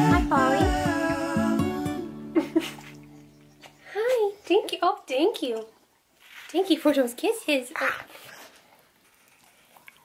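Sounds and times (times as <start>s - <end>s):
dog licking: 8.1s - 10.0s.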